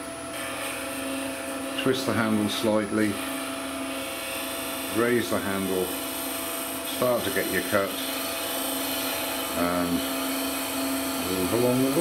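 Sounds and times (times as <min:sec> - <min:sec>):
wood lathe humming: 0:00.0 - 0:12.0
chisel rubbing on spinning wood: 0:00.3 - 0:12.0.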